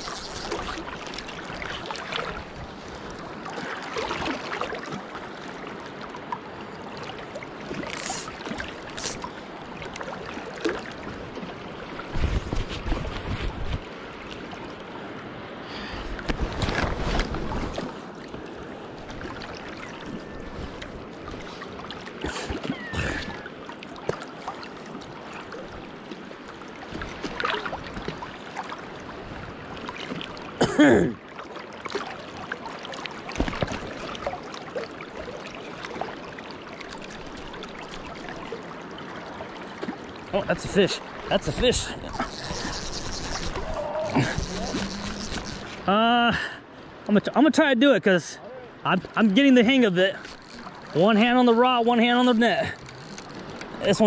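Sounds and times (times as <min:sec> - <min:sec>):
river current rushing: 0:00.0 - 0:12.1, 0:40.1 - 0:47.1, 0:48.1 - 0:54.0
buffeting on microphone: 0:42.0 - 0:45.9.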